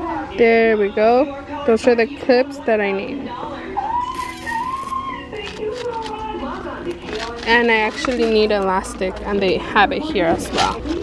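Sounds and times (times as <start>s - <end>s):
high voice singing long notes: 3.7s - 6.5s.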